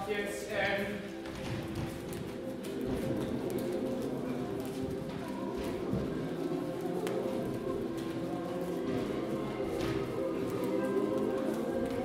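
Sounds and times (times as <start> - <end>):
footsteps on wooden floor: 1.0 - 12.0
choir holding low notes: 1.1 - 12.0.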